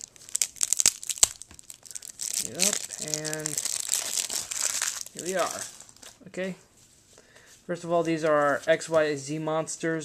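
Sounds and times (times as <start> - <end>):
plastic wrap snapping: 0.0 - 6.2
plastic wrapping crinkling: 0.0 - 6.2.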